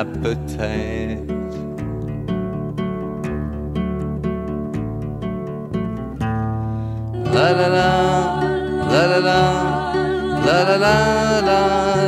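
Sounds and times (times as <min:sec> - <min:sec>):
acoustic guitar picking: 0:00.0 - 0:12.0
sustained low bass notes: 0:00.0 - 0:12.0.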